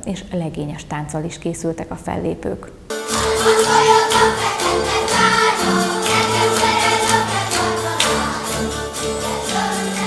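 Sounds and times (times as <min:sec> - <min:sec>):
folk music with singing: 0:02.9 - 0:10.0.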